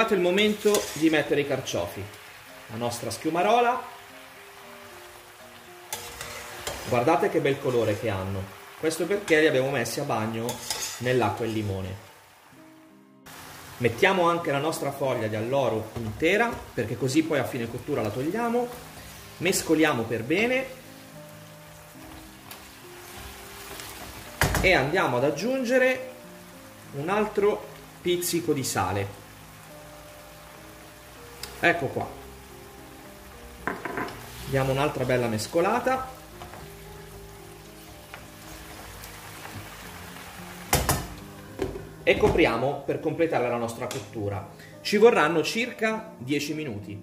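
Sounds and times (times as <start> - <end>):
food sizzling in a wok: 0.0 - 42.9
faint background music: 0.0 - 47.0
food dropping into sizzling oil: 4.3 - 7.0, 20.6 - 25.0, 29.0 - 42.4.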